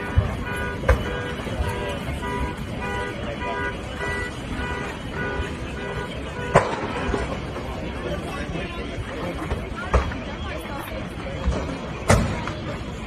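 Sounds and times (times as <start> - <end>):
car alarms beeping: 0.0 - 8.1
sharp bangs: 6.4 - 7.4.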